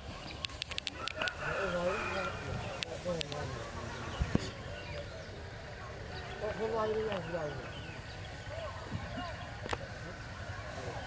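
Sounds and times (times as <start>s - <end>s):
people talking outdoors: 0.0s - 11.0s.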